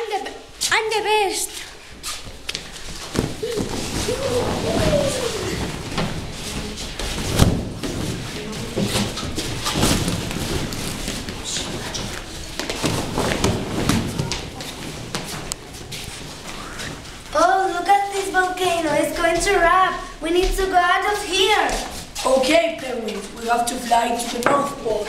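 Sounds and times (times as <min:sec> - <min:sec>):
children's excited voices and shouts: 0:00.0 - 0:01.6, 0:03.4 - 0:05.8
children landing on mats with thuds: 0:02.9 - 0:11.8, 0:12.5 - 0:15.4.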